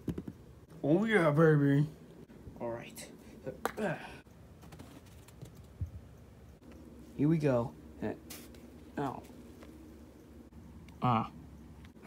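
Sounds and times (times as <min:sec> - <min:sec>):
putter tapping golf ball: 0:00.0 - 0:00.4.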